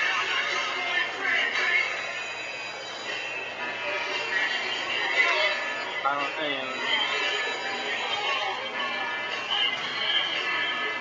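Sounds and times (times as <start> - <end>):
dance music: 0.0 - 2.2, 3.1 - 11.0
indistinct chatter: 0.0 - 11.0.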